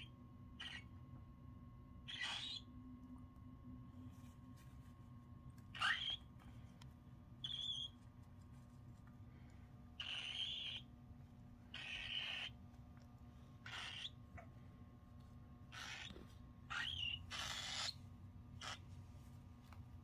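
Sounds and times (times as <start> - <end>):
cockatiels harsh calls: 0.0 - 0.9, 2.1 - 2.7, 5.7 - 6.2, 7.4 - 8.0, 10.0 - 10.9, 11.7 - 12.6, 13.6 - 14.5, 15.7 - 18.0, 18.6 - 18.9
faint low hum: 0.0 - 20.0.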